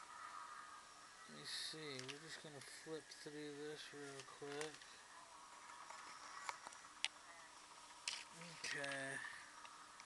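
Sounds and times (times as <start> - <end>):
small paper clicks: 4.1 - 4.9.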